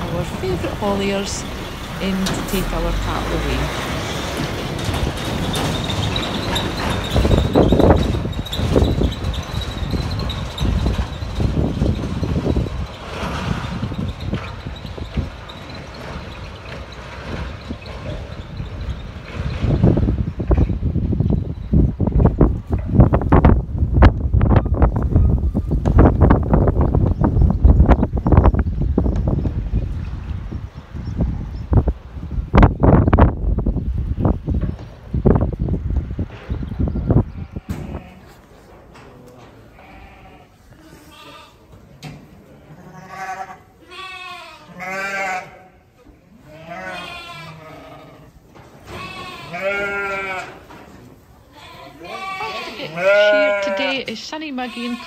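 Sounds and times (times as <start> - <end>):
lorry pulling away rumbling: 0.0 - 22.0
sheep bleating: 39.7 - 41.7, 42.7 - 45.8, 46.5 - 48.3, 48.9 - 50.6, 51.5 - 55.0.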